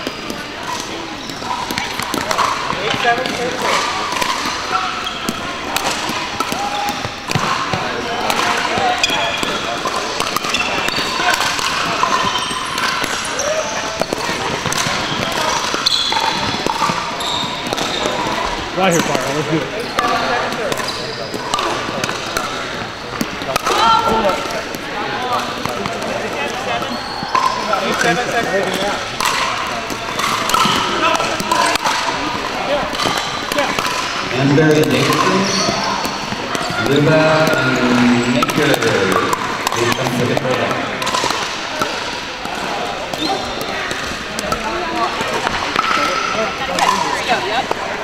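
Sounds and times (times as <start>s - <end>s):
players' voices: 0.0s - 48.0s
paddles hitting plastic ball: 0.3s - 13.4s, 14.0s - 19.4s, 20.0s - 47.0s
ball bouncing on wooden floor: 34.7s - 44.6s.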